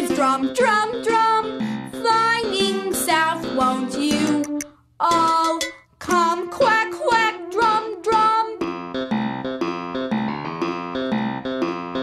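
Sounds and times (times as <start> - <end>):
light instrumental backing: 0.0 - 6.4
person singing children's song: 0.0 - 8.8.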